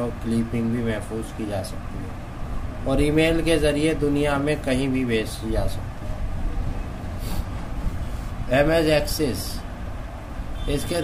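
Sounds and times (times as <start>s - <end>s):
short hiss: 7.1s - 8.4s.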